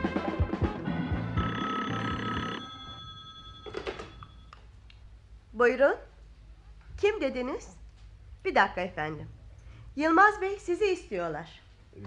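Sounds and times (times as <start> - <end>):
telephone bell ringing: 1.3 - 4.5.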